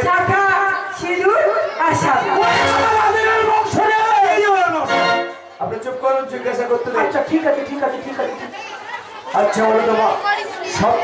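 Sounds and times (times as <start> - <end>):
man declaiming through loudspeakers: 0.0 - 8.5, 9.3 - 11.0.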